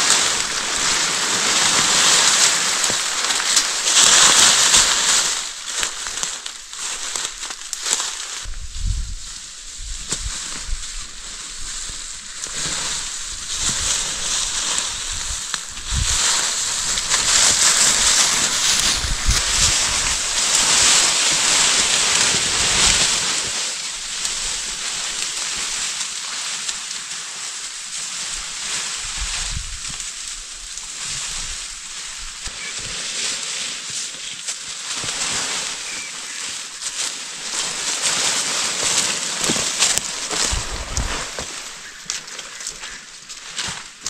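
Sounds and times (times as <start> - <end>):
foliage rustling in wind: 0.0 - 44.0.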